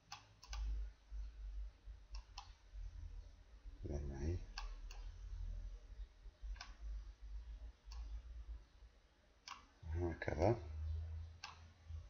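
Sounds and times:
computer mouse clicking: 0:00.0 - 0:01.4, 0:02.1 - 0:02.6, 0:04.5 - 0:05.2, 0:06.5 - 0:06.8, 0:07.8 - 0:08.2, 0:09.5 - 0:09.7, 0:11.4 - 0:11.7
low steady rumble: 0:00.4 - 0:09.2, 0:09.8 - 0:12.0.

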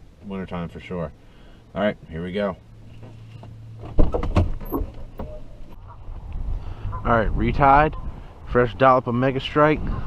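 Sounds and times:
wind buffeting microphone: 0:05.1 - 0:10.0.

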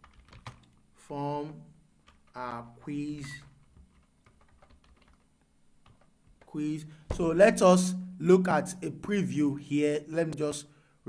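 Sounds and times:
faint computer keyboard typing: 0:00.0 - 0:00.8, 0:02.0 - 0:06.6.

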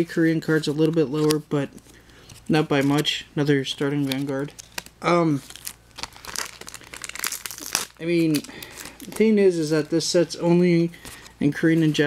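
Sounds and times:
foil wrappers crinkling: 0:00.5 - 0:10.2.

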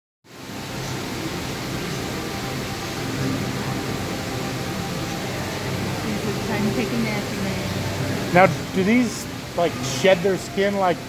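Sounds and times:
circulating water rushing: 0:00.3 - 0:11.0.

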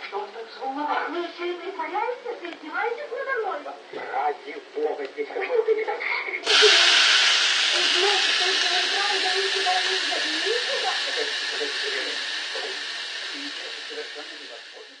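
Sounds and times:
meat sizzling on a contact grill: 0:06.4 - 0:15.0.

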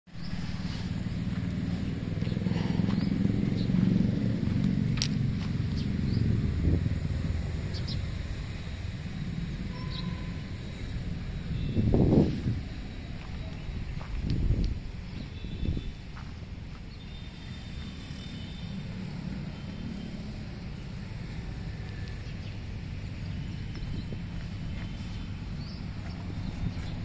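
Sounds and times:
diesel engine idling: 0:00.1 - 0:14.2.

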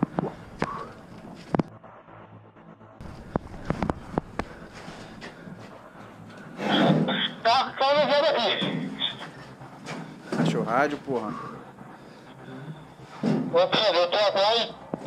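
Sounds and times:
loud garbled man's voice: 0:07.2 - 0:09.2, 0:10.4 - 0:11.5, 0:13.5 - 0:14.8.

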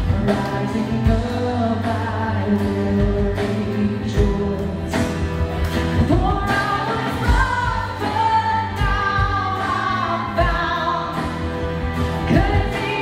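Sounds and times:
band with steady drum beat: 0:00.0 - 0:13.0
women singing together: 0:06.4 - 0:11.4, 0:12.2 - 0:13.0.

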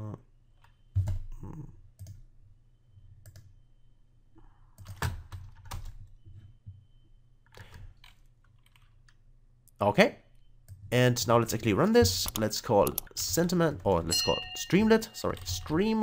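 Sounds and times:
computer keyboard keystrokes: 0:07.5 - 0:09.2, 0:12.2 - 0:13.2.

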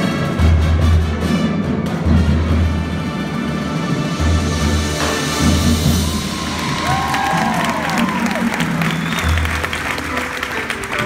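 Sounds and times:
marching band playing: 0:00.0 - 0:11.0
crowd cheering and applauding: 0:05.8 - 0:11.0
people whooping: 0:05.9 - 0:10.6.

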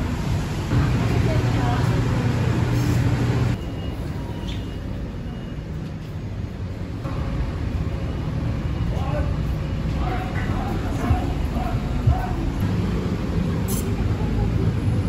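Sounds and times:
indistinct background voices: 0:09.3 - 0:12.7.

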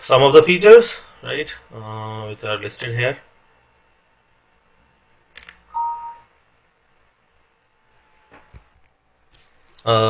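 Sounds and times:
two-tone electronic beep: 0:05.7 - 0:06.3.

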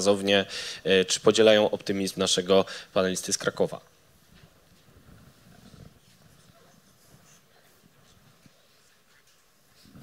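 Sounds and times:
soft rustling: 0:03.9 - 0:10.0.

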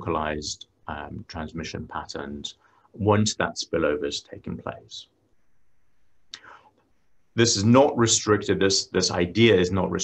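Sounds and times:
faint steady hiss: 0:00.0 - 0:10.0
soft intake of breath: 0:06.3 - 0:06.8.

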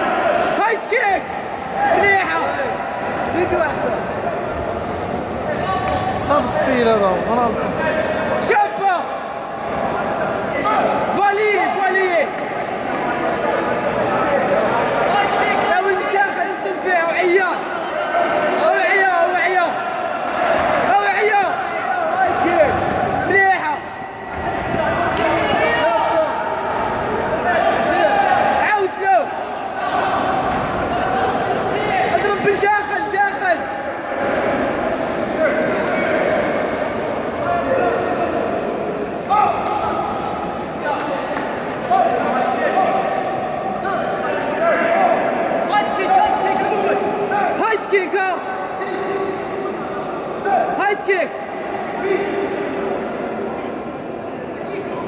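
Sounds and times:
men shouting in echoing hall: 0:00.0 - 0:53.2.

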